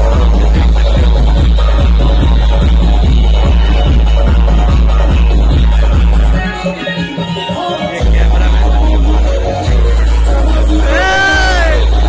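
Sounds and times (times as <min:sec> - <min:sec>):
booming bass beat: 0:00.0 - 0:06.6, 0:08.0 - 0:12.0
electronic dance music: 0:00.0 - 0:12.0.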